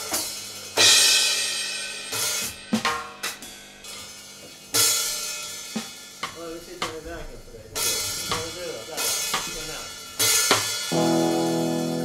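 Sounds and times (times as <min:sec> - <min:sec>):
electronic drum hit: 0:06.3 - 0:12.0
electronic cymbal crash: 0:07.1 - 0:12.0.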